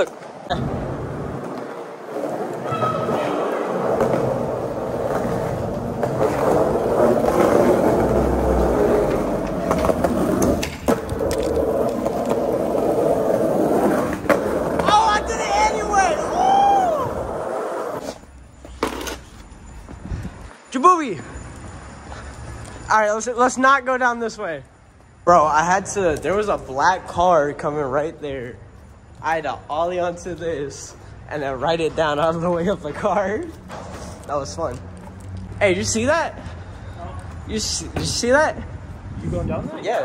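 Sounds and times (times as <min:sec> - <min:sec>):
skateboard wheels rolling on concrete: 0:00.0 - 0:20.7, 0:21.4 - 0:40.0.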